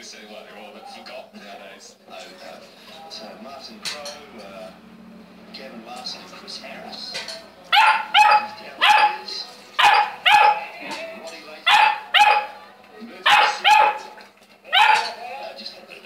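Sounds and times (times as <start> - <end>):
puppy barking: 7.7 - 10.8, 11.6 - 15.2.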